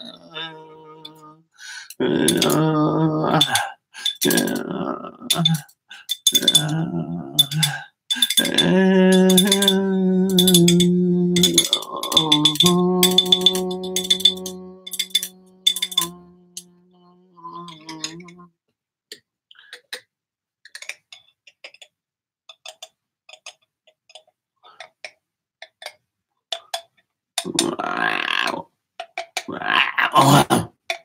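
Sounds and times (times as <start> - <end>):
man holding low vocal note: 0.0 - 3.6, 4.2 - 5.6, 6.4 - 18.5
jingling rattle shaken: 5.3 - 16.7.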